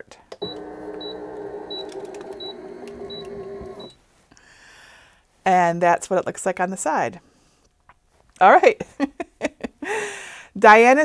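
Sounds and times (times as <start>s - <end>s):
press motor running: 0.4s - 4.0s.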